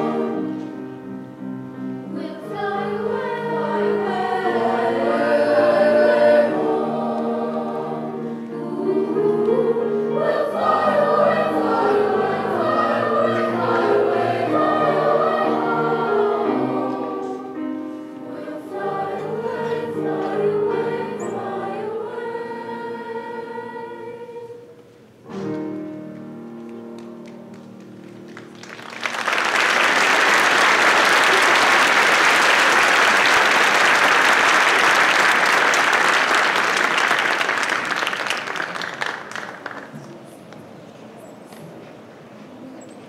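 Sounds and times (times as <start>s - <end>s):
choir singing sustained chords: 0.0s - 24.8s.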